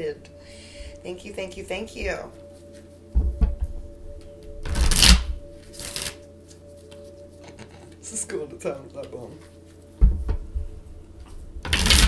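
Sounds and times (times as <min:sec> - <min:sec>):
cards being shuffled: 0:04.7 - 0:07.9, 0:11.7 - 0:12.0.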